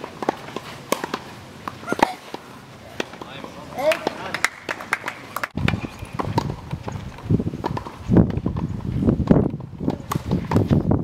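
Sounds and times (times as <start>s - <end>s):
tennis ball bouncing: 0.0s - 10.7s.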